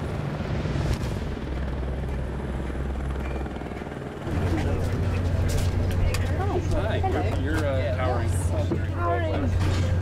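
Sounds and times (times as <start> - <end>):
helicopter flying overhead: 0.0 - 10.0.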